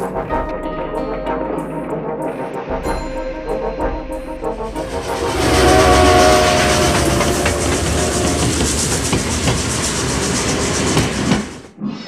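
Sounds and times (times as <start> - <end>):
train horn: 4.7 - 9.8
train wheels clattering on rails: 4.8 - 11.7.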